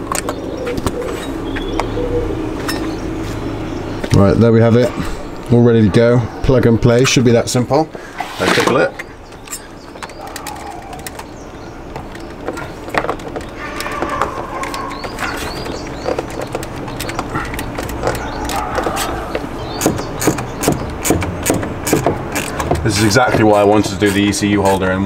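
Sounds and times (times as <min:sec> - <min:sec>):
birds calling: 0:00.0 - 0:25.0
air filter clicks and knocks: 0:08.6 - 0:25.0.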